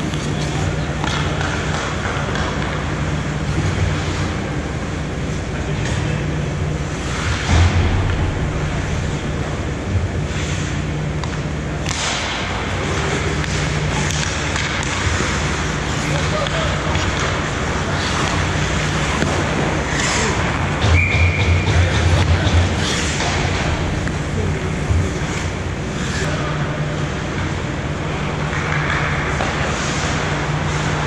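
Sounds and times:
sticks and puck clattering: 0.0 - 6.1, 10.3 - 31.0
steady low hum: 0.0 - 31.0
skate blades scraping ice: 11.9 - 20.8, 22.7 - 23.6, 25.1 - 26.3, 28.4 - 31.0.

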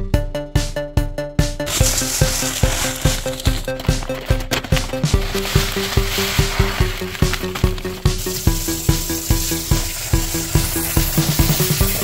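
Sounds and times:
background music with beat: 0.0 - 12.0
gravel pouring into plastic bucket: 1.7 - 12.0.

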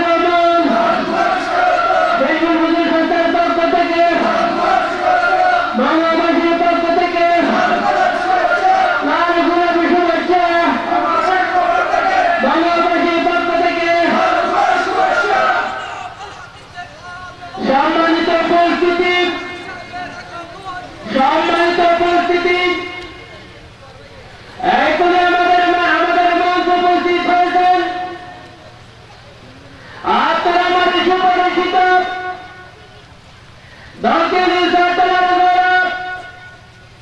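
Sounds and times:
man's voice holding tones: 0.0 - 1.1, 2.2 - 4.6, 5.7 - 8.4, 9.0 - 23.8, 24.5 - 28.5, 30.0 - 32.6, 34.0 - 36.6.

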